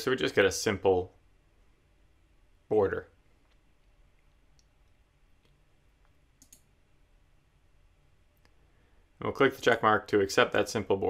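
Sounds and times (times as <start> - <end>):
computer mouse clicks: 3.4 - 6.7.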